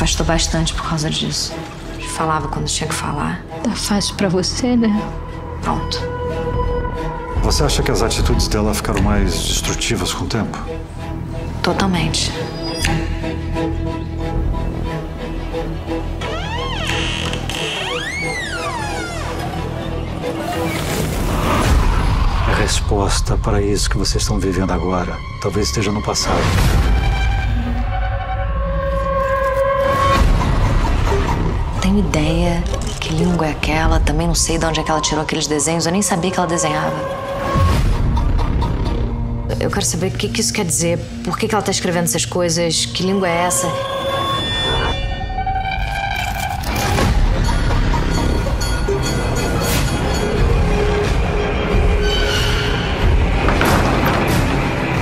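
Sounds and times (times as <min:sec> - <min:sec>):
siren-like swooping tone: 0:43.2 - 0:45.8.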